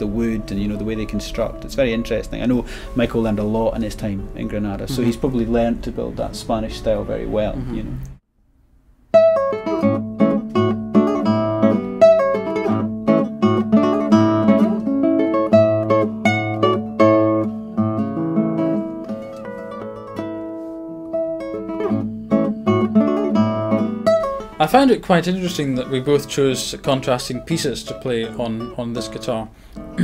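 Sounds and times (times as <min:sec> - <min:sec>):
fingerstyle classical guitar: 0:09.1 - 0:30.0.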